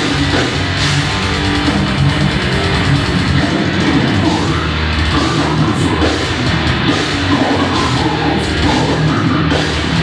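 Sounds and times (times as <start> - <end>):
death metal band playing: 0.0 - 10.0.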